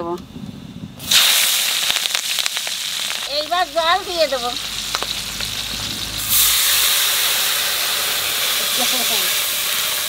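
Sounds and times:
chillies sizzling in hot oil: 0:01.0 - 0:10.0.

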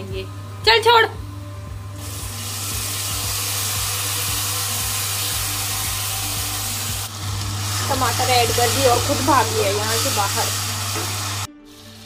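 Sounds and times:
vegetables sizzling in hot oil: 0:02.0 - 0:12.0.

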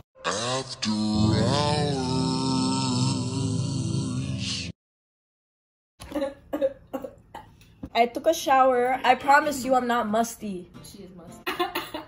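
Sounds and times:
woman coughing: 0:06.0 - 0:07.6.

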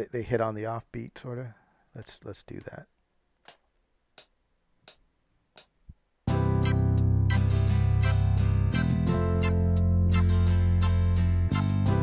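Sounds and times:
beat with bass and hi-hats: 0:03.4 - 0:12.0
offbeat chord stabs: 0:06.3 - 0:12.0.

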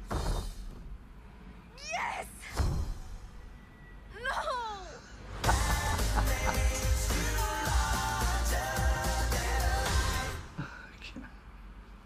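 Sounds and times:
trailer soundtrack music: 0:05.2 - 0:10.6.

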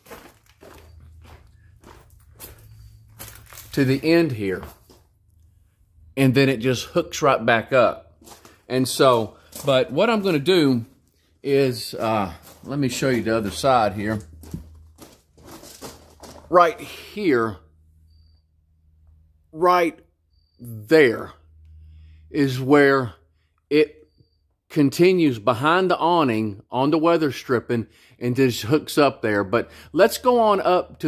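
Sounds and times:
soft footsteps: 0:00.0 - 0:05.3, 0:08.1 - 0:16.6
low steady hum: 0:00.0 - 0:26.8.

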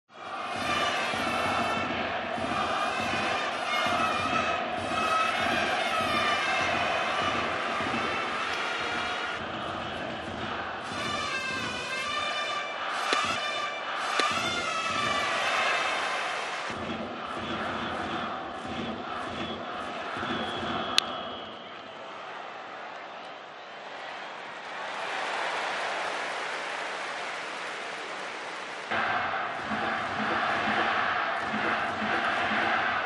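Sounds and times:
stadium crowd: 0:00.0 - 0:33.0
brass music phrases: 0:10.5 - 0:16.7
sharp cracks: 0:14.1 - 0:14.6.

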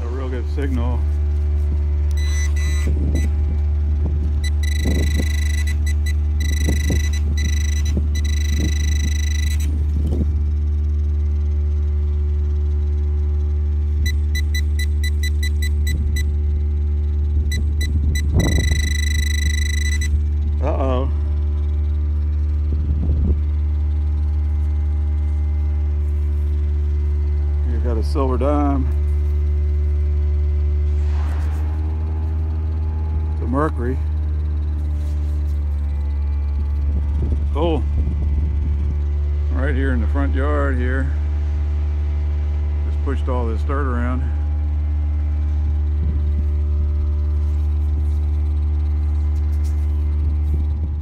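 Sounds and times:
engine drone: 0:00.0 - 0:51.0
metal detector beeps: 0:02.1 - 0:03.4, 0:04.4 - 0:09.8, 0:14.0 - 0:16.4, 0:17.5 - 0:20.3
digging in loose soil: 0:46.4 - 0:51.0.

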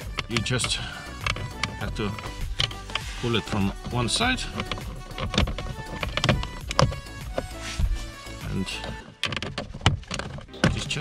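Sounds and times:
plastic clips creaking and clicking: 0:00.0 - 0:11.0.

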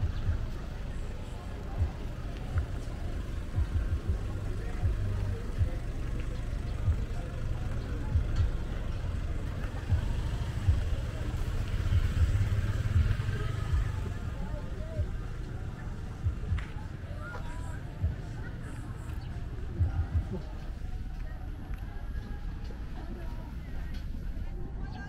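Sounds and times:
small motorcycle passing: 0:08.0 - 0:16.7.

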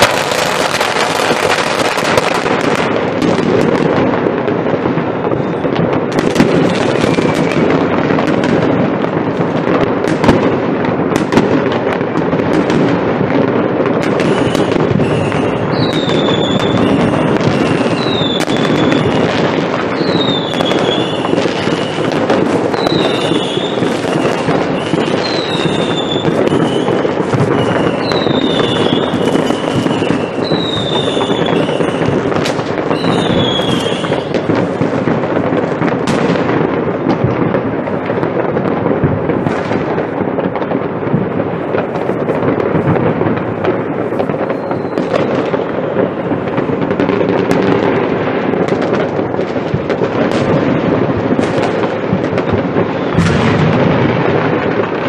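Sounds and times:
fireworks bangs and crackle: 0:00.0 - 0:55.0
high falling whistle: 0:22.8 - 0:32.1.

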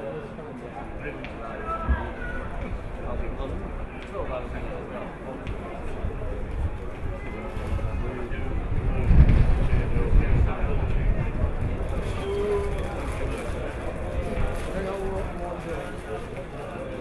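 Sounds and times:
wind buffeting microphone: 0:05.7 - 0:15.9.

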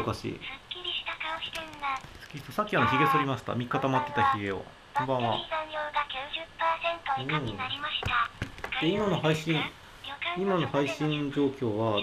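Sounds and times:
man speaking: 0:00.0 - 0:00.4, 0:02.4 - 0:05.5, 0:07.2 - 0:07.8, 0:08.8 - 0:09.8, 0:10.4 - 0:12.0.

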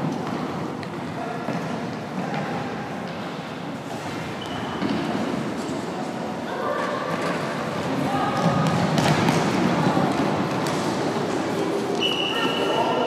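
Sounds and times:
shouts and chatter echoing: 0:04.6 - 0:13.0.

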